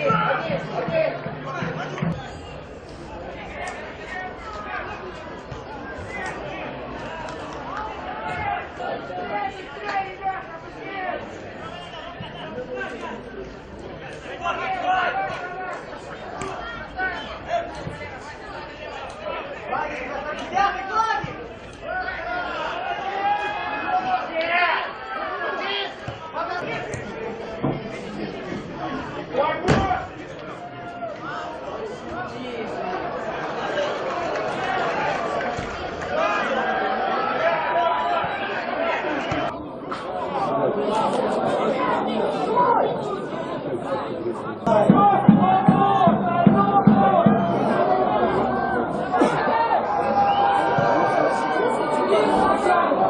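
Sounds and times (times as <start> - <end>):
overlapping crowd chatter: 0.0 - 53.0.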